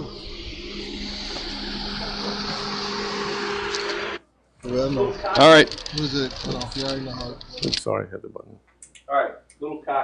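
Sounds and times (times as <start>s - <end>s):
low steady hum: 0.0s - 7.9s.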